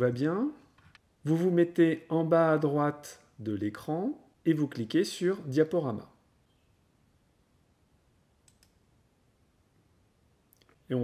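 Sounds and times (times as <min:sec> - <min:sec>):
computer mouse clicks: 0:08.4 - 0:08.8.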